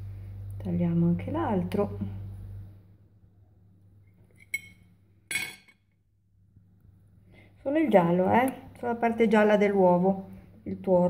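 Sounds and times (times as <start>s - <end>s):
knife clinking against plate: 4.4s - 5.8s.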